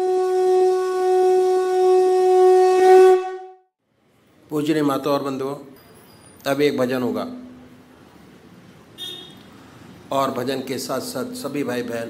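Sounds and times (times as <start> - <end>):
long horn-like wind note: 0.0 - 3.7.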